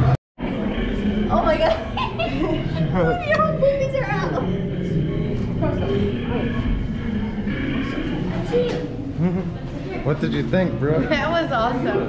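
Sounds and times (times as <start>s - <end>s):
background hum of room: 0.4s - 12.0s
people chattering: 0.4s - 12.0s
light laughter: 1.7s - 3.2s.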